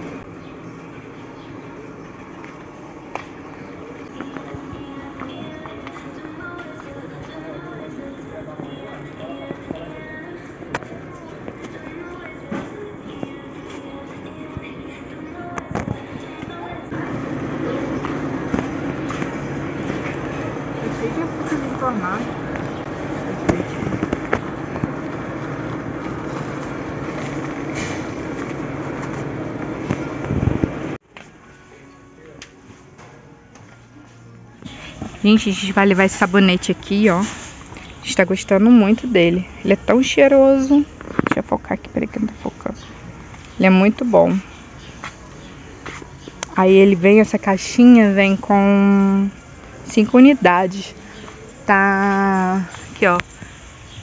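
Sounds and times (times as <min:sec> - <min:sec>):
background music: 0:00.0 - 0:53.2
murmur of voices: 0:00.8 - 0:14.4
shopping cart rattling: 0:16.9 - 0:31.0.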